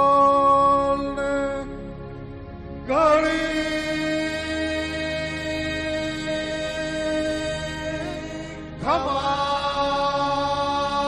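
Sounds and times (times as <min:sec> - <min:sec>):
devotional music held note: 0:02.9 - 0:11.0.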